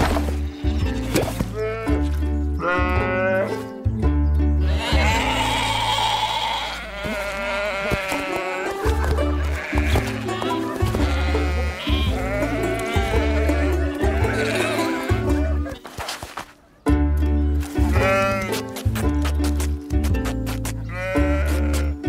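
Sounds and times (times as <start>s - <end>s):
cartoon music with bass line: 0.4s - 5.8s, 8.7s - 15.7s, 16.8s - 22.0s
cartoon sheep bleating: 2.6s - 3.6s, 4.6s - 15.7s, 17.9s - 18.5s, 20.9s - 22.0s.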